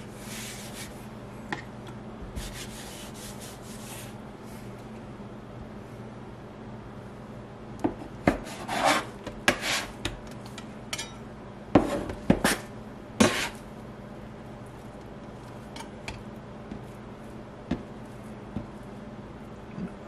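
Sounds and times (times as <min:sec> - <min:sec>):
scraper scraping countertop: 0:08.4 - 0:10.0, 0:13.2 - 0:13.6.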